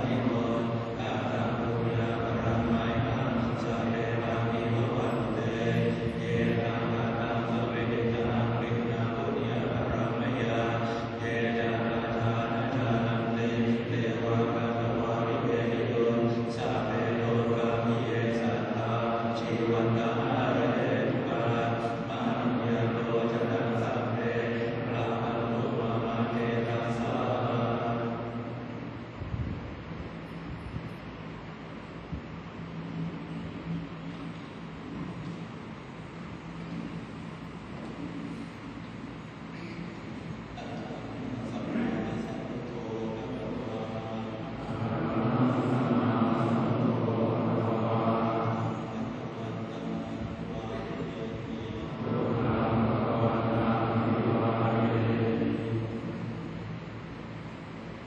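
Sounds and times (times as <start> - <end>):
monks chanting: 0.0 - 29.0, 40.1 - 58.0
electric fans whirring: 0.0 - 58.0.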